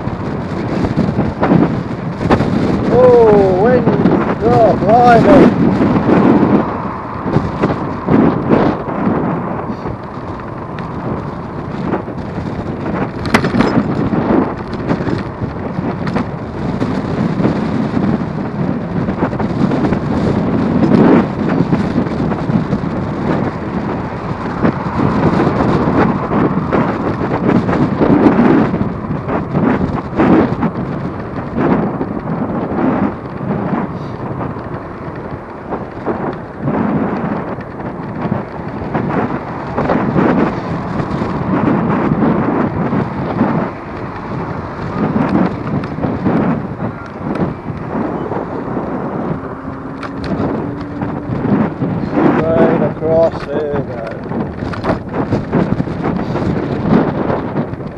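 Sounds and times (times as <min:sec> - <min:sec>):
wind buffeting microphone: 0:00.0 - 0:57.9.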